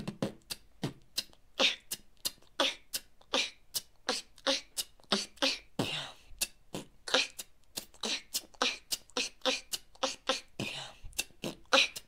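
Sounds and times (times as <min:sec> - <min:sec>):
beatboxing mouth drum sounds: 0:00.0 - 0:12.0.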